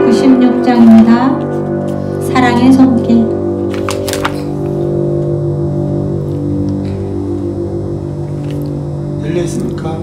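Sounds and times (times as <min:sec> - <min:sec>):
keyboard sustained chords: 0:00.0 - 0:10.0.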